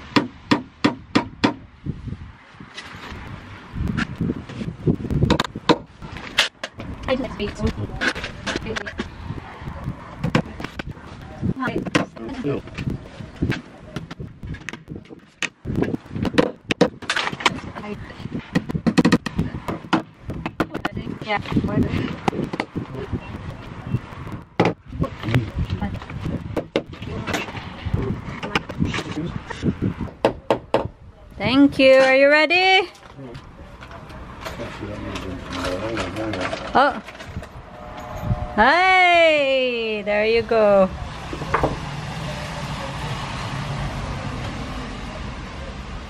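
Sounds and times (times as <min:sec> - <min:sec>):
low steady rumble: 0:37.0 - 0:46.0.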